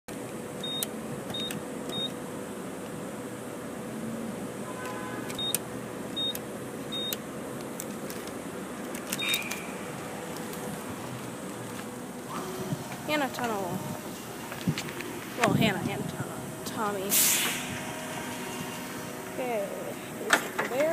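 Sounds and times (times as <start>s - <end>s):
steady background hum: 0.1s - 20.9s
keypad beeps: 0.6s - 2.2s, 5.3s - 7.2s, 9.1s - 9.7s.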